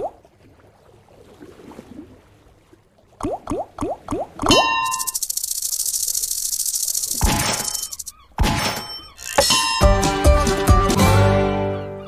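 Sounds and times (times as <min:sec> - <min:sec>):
quick rising bloops: 0:03.2 - 0:08.0.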